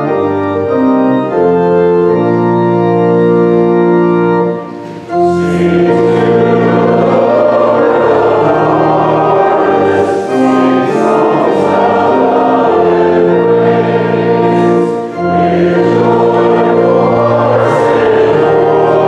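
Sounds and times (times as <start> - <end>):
congregation singing a hymn: 0.0 - 19.0
organ accompaniment: 0.0 - 19.0.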